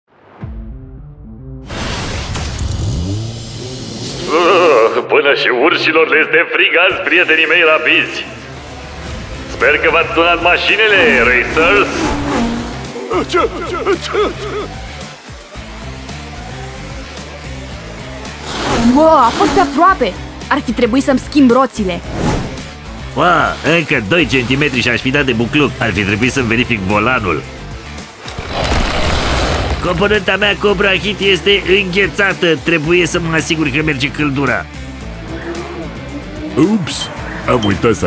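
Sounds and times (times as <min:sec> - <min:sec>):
background music: 0:00.1 - 0:38.0
cartoon race car engines whining: 0:02.5 - 0:05.2, 0:07.3 - 0:20.3
cartoon race car whoosh: 0:11.0 - 0:13.1.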